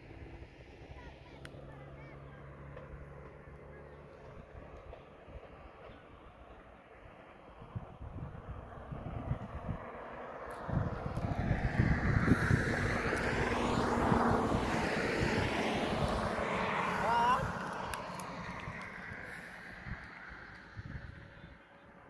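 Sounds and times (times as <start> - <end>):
car passing by: 0.0 - 22.0.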